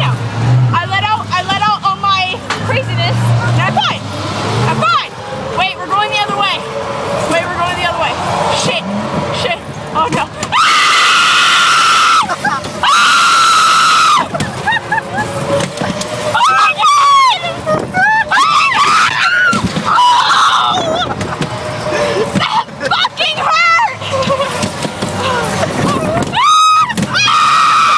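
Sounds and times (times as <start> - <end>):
girls screaming: 10.5 - 15.4, 16.2 - 21.2, 25.2 - 27.9.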